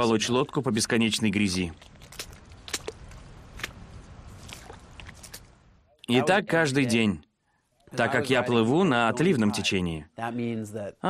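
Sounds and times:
footsteps splashing through water and mud: 1.5s - 5.5s.

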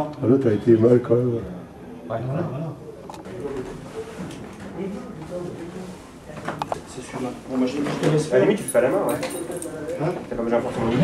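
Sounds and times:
men talking quietly: 0.0s - 11.0s.

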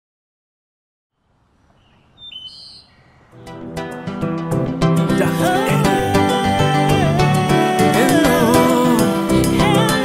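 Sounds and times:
short high bird chirps: 1.6s - 3.3s
music with sustained notes and beat: 3.4s - 10.0s.

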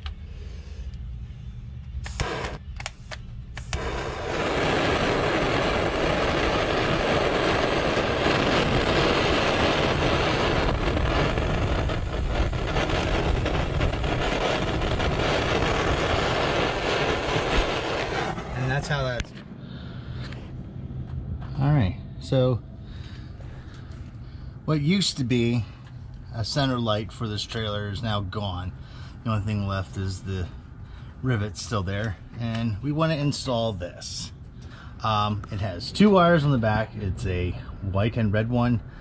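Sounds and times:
heat gun blowing hot air: 2.0s - 3.0s, 3.6s - 18.5s.

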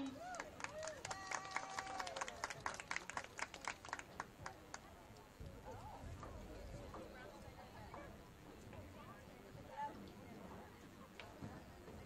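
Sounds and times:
faint distant voices: 0.0s - 12.0s.

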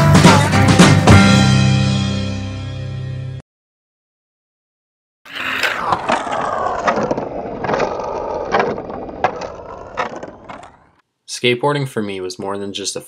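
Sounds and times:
skateboard rolling on concrete: 5.3s - 11.0s.

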